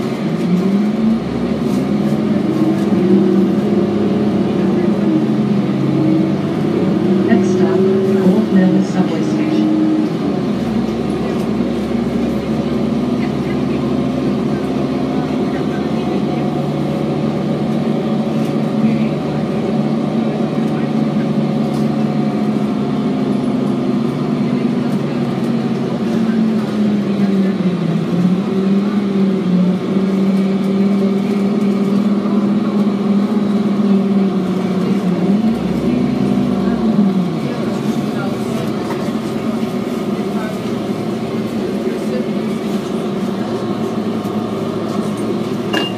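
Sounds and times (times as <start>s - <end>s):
bus diesel engine running: 0.0s - 45.9s.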